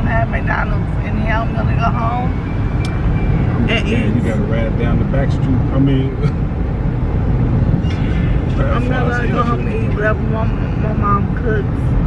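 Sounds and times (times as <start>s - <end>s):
car interior road and engine rumble: 0.0s - 12.0s.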